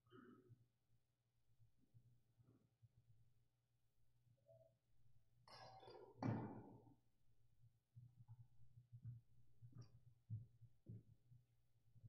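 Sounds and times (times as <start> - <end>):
footsteps with soft thuds: 8.0 - 11.4.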